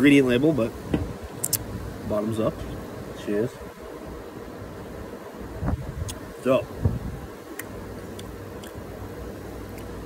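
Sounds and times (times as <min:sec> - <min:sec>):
wind on microphone: 0:05.5 - 0:07.3.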